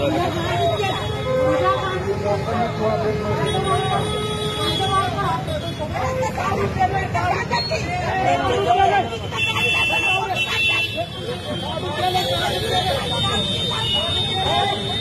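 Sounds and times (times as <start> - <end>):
crowd shouting and talking: 0.0 - 15.0
street traffic: 0.0 - 15.0.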